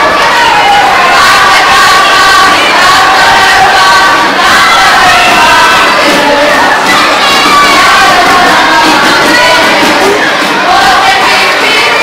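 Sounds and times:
young voices shouting and chanting: 0.0 - 12.0.

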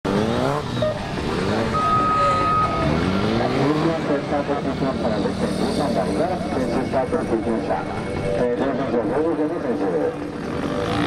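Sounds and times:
motorcycle engine revving: 0.1 - 8.4, 10.0 - 11.0
steady tone: 0.7 - 9.8.

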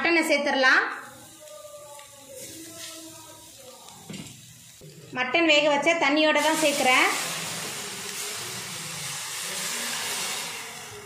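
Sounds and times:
stock sizzling in hot pan: 0.1 - 11.0.

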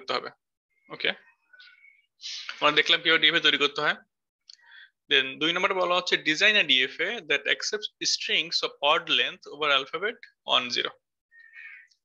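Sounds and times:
man speaking: 0.0 - 1.3, 2.2 - 4.1, 5.1 - 11.1.

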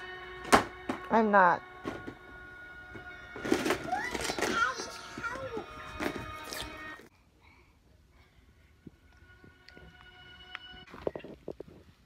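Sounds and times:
plastic toy case rattling: 3.4 - 5.4
child's rising voice: 3.8 - 5.7.

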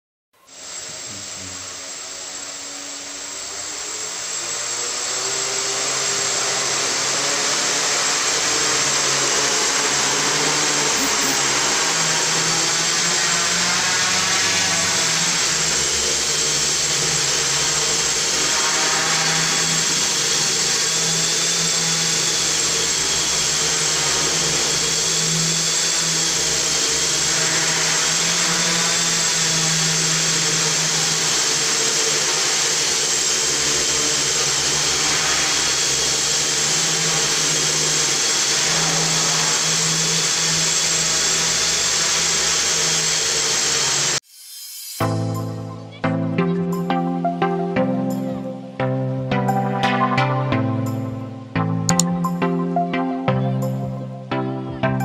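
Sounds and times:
quadcopter buzzing whine: 0.4 - 55.0.

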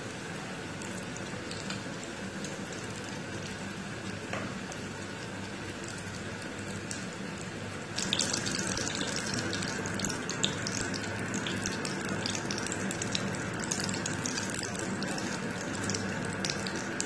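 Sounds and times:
deep-frying sizzle and crackling: 0.0 - 17.0.

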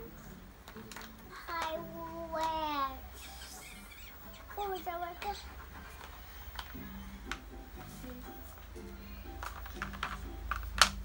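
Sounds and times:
faint music: 0.0 - 11.0
plastic markers clattering: 0.6 - 2.6, 9.3 - 11.0.

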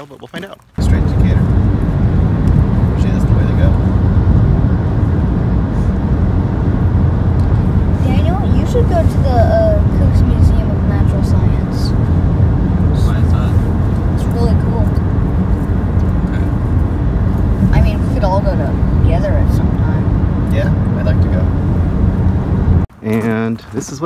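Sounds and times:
car road and engine rumble: 0.0 - 24.0.

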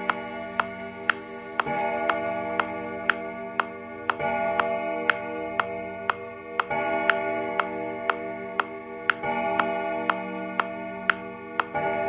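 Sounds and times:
metronome ticking: 0.0 - 12.0.

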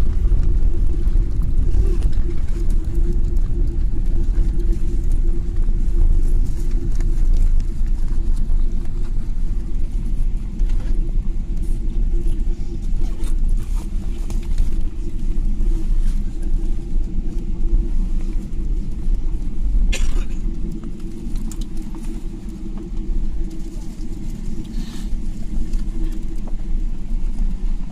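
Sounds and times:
airliner cabin rumble: 0.0 - 27.9.

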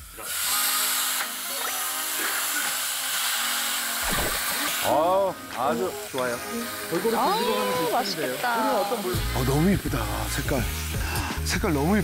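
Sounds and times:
light background music: 0.0 - 12.0
meat sizzling in hot fat: 0.0 - 12.0.

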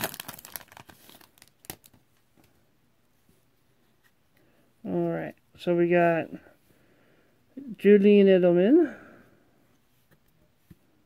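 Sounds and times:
foil wrapper crinkling and tearing: 0.0 - 2.0.

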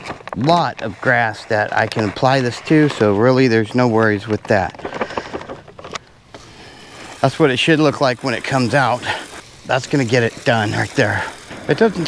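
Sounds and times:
fertilizer pellets pouring into hopper: 6.3 - 12.0.

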